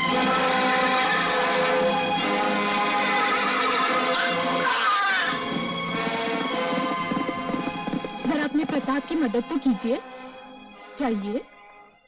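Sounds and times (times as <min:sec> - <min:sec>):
film background music: 0:00.0 - 0:12.0
horse whinnying: 0:03.3 - 0:08.2.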